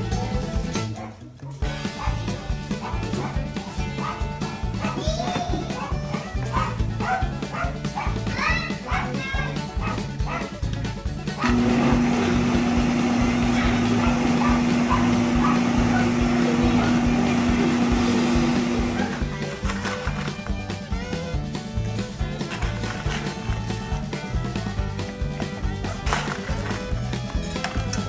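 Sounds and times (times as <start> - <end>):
background music with beat: 0.0 - 28.0
blender motor whirring: 11.4 - 19.8.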